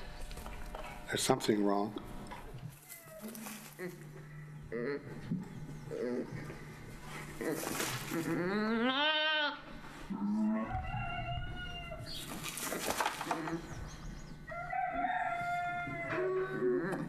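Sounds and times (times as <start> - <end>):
lambs bleating high: 7.4 - 10.5.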